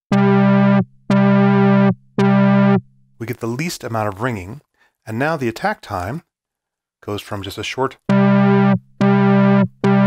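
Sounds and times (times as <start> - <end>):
low synthesizer notes: 0.1 - 2.9, 8.0 - 10.0.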